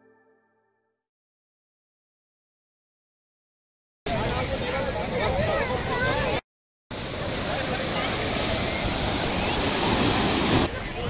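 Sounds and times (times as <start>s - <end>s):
surf breaking on beach: 4.1s - 11.0s.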